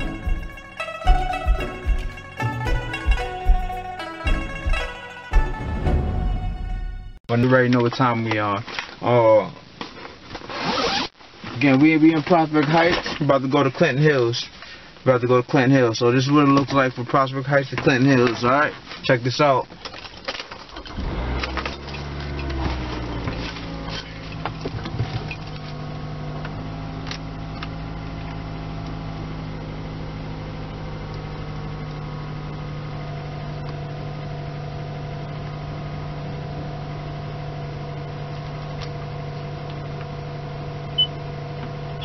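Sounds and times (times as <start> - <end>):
car engine idling: 0.0 - 7.2.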